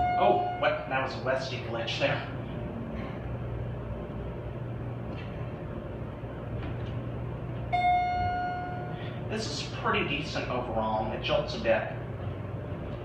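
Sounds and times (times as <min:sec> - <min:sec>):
electronic chime tone: 0:00.0 - 0:01.0, 0:07.7 - 0:09.0
elevator car humming: 0:00.0 - 0:13.0.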